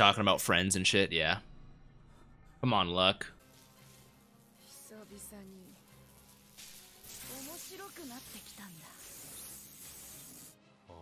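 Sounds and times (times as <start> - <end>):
background music: 0.0 - 11.0
hissing gritty crackle effect: 3.4 - 10.6.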